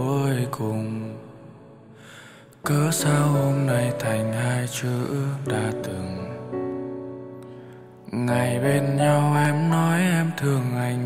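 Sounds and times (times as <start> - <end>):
man singing pop ballad: 0.0 - 7.0, 8.0 - 11.0.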